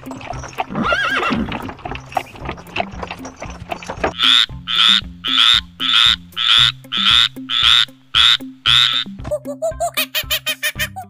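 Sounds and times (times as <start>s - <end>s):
frog croaking: 4.1s - 9.2s.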